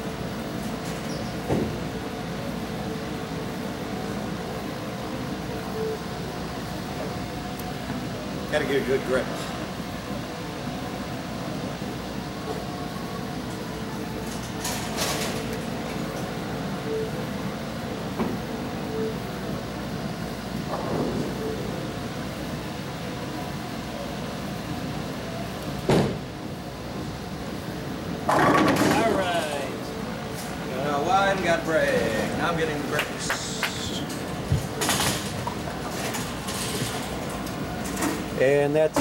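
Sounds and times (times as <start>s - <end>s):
machinery humming: 0.0s - 39.0s
ball crashing into pins: 28.3s - 29.0s.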